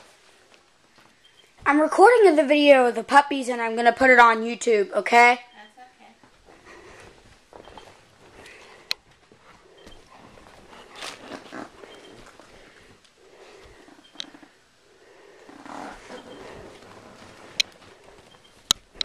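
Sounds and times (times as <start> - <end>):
handling rustles: 6.3 - 13.9
dog sniffing: 6.4 - 18.4
fur rubbing on microphone: 15.5 - 18.2.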